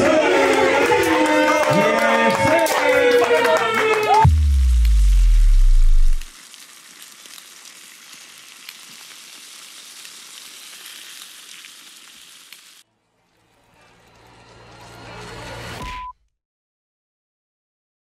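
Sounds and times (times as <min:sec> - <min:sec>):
deep bass drop: 0:04.2 - 0:06.3
crackling hiss: 0:04.2 - 0:12.8.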